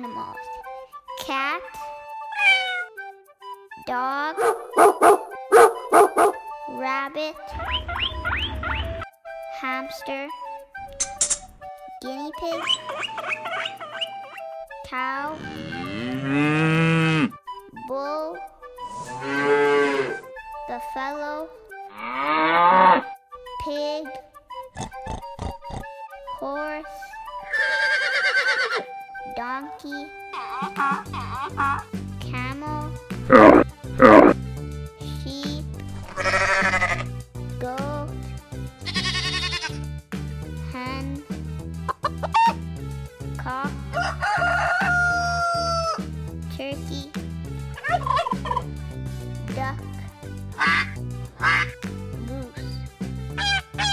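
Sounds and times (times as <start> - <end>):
background music beat: 0.0 - 53.9
cow mooing: 15.4 - 17.4, 19.1 - 20.2, 21.9 - 23.1, 33.3 - 34.4
rooster crowing: 44.0 - 46.0.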